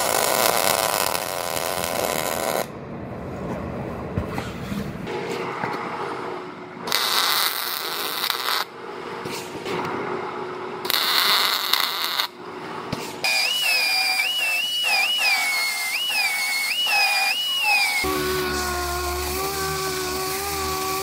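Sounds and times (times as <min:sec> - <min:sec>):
welding crackle: 0:00.0 - 0:02.7, 0:06.9 - 0:08.7, 0:10.9 - 0:12.3, 0:13.3 - 0:21.0
air-powered sander hum: 0:13.2 - 0:21.0
pneumatic tool whine: 0:13.2 - 0:21.0.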